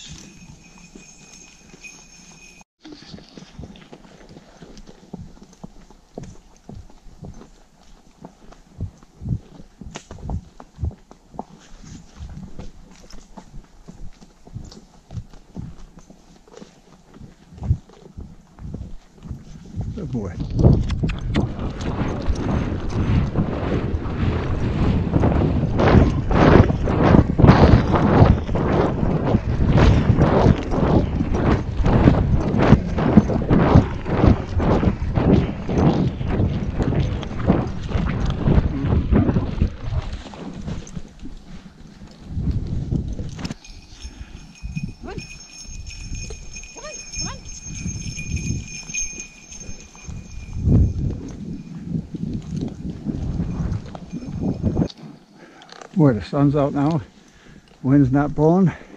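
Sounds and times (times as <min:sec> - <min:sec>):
horse hoofbeats in snow: 0:00.0 - 0:58.9.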